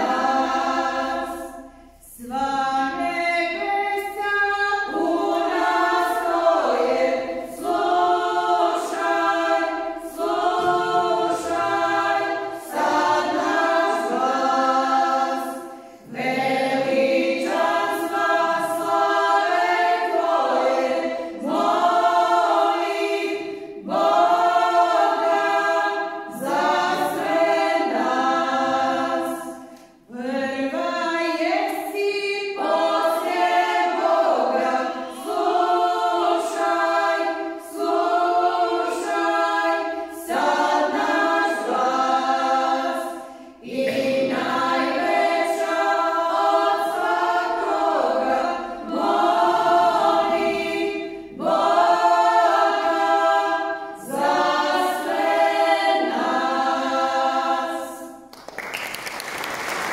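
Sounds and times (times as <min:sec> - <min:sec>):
women singing hymn a cappella: 0:00.0 - 0:58.3.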